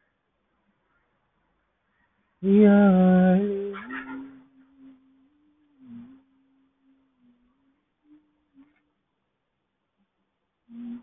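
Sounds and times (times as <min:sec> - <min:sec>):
person humming low note: 0:02.4 - 0:08.7, 0:10.7 - 0:11.0.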